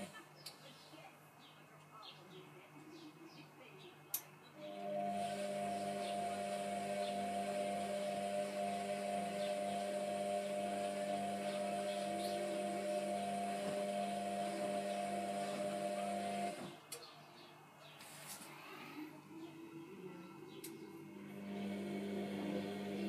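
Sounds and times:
washing machine motor hum: 4.6 - 16.9, 19.1 - 23.0.

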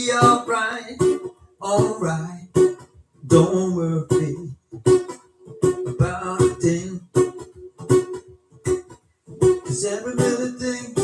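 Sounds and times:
acoustic guitar strummed in bursts: 0.0 - 11.0.

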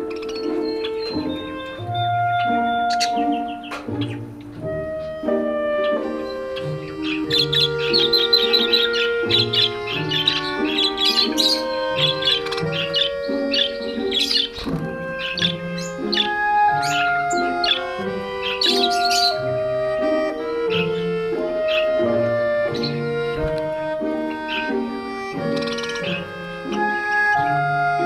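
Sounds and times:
budgerigars chirping: 0.0 - 28.0
slow instrumental music: 0.0 - 28.0.

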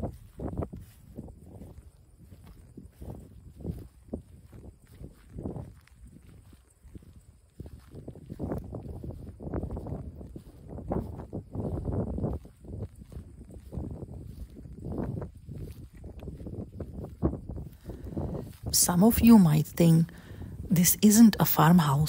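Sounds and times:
footsteps in dry grass: 0.0 - 22.0.

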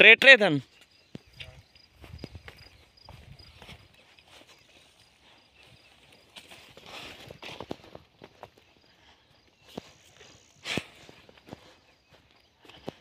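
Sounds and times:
footsteps on dirt path: 0.7 - 13.0.

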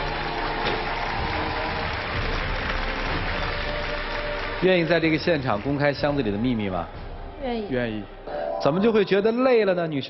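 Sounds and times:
audience applauding: 0.0 - 6.9
background music: 0.0 - 10.0.

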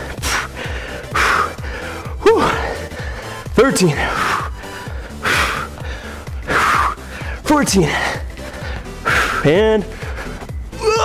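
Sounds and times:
man breathing hard: 0.0 - 10.8
background music with steady beat: 0.0 - 11.0.

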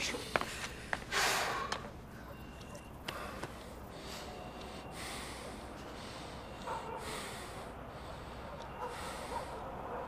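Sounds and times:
person breathing heavily through nose: 0.5 - 1.9, 3.1 - 9.6.

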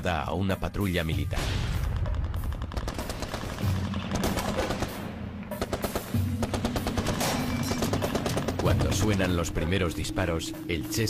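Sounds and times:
low background music: 0.0 - 11.0
rapid gunfire bursts: 1.7 - 9.5.

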